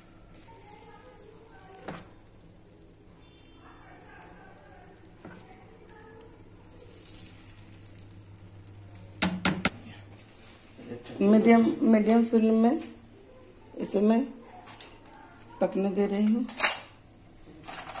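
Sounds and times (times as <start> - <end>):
batter sizzling in pan: 0.0 - 9.7.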